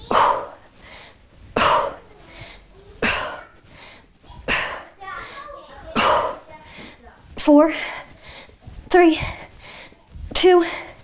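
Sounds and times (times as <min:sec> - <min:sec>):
woman's forceful exhalations: 0:00.0 - 0:05.0
faint children's voices: 0:01.6 - 0:07.4.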